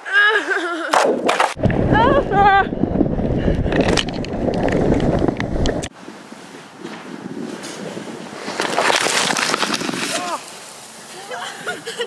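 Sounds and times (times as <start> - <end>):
wind buffeting microphone: 1.6 - 10.2
sled scraping on snow: 6.8 - 11.8.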